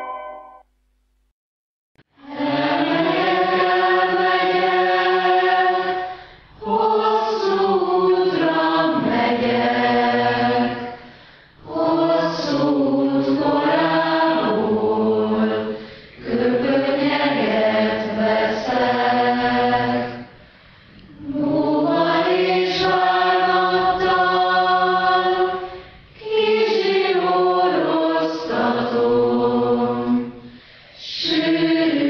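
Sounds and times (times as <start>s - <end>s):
choir singing sustained phrases: 2.1s - 32.0s.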